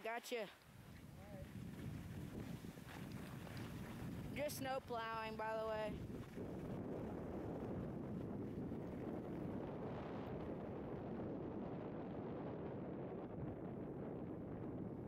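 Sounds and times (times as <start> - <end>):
wind on microphone: 0.7 - 15.0.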